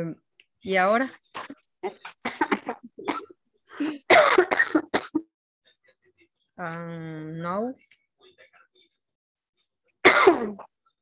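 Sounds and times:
person coughing: 2.2s - 5.3s, 10.1s - 10.7s.

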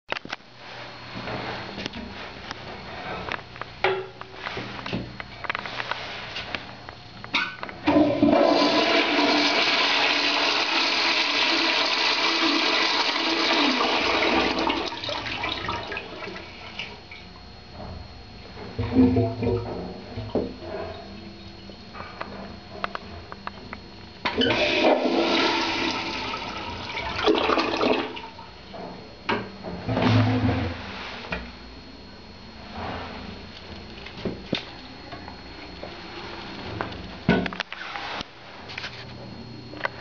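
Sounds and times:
toilet flushing: 7.8s - 17.0s, 24.3s - 28.4s.

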